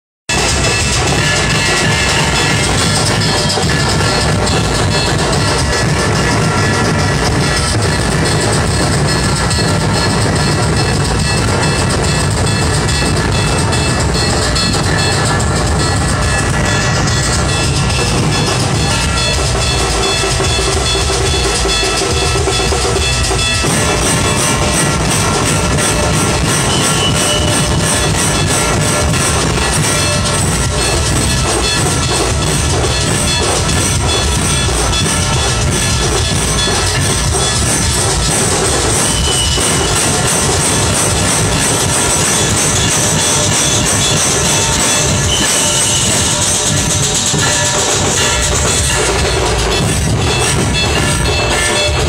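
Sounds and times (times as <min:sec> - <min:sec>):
procession music with heavy drumming: 0:00.3 - 0:52.0.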